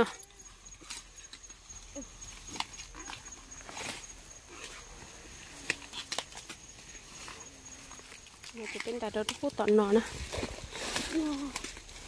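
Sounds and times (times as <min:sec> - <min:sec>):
dry corn stalks rustling: 0:00.0 - 0:12.0
high insect trill: 0:00.0 - 0:12.0.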